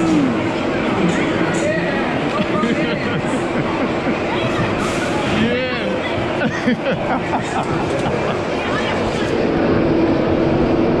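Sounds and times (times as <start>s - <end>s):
roller coaster train rumbling: 0.0s - 11.0s.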